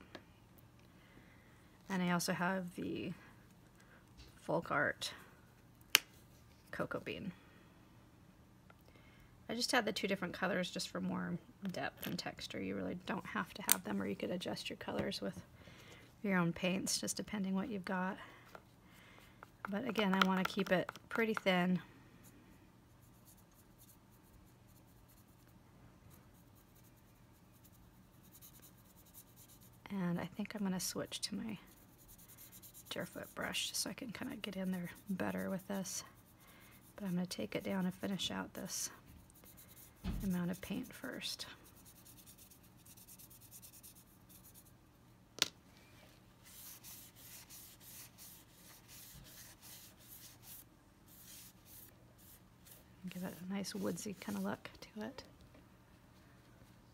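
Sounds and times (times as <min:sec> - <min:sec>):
low steady hum: 0:00.0 - 0:56.9
paintbrush scratching: 0:26.2 - 0:29.8, 0:31.7 - 0:44.8, 0:46.4 - 0:54.6
paper towel rubbing: 0:46.4 - 0:52.4.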